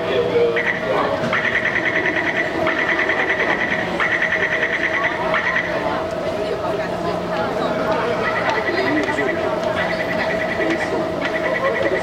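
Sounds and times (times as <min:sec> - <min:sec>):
train and station hum: 0:00.0 - 0:12.0.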